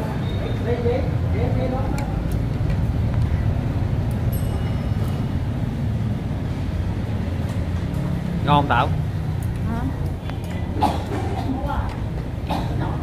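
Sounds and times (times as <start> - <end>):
electric fans rumbling: 0.0 - 13.0.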